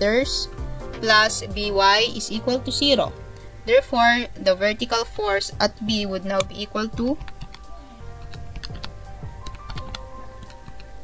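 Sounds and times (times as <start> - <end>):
speech: 0.0 - 7.2
keys clicking: 6.3 - 11.0.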